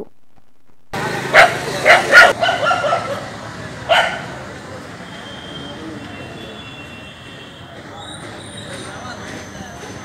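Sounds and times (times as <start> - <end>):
outdoor background noise: 0.0 - 10.0
dog barking: 1.3 - 3.2, 3.9 - 4.3.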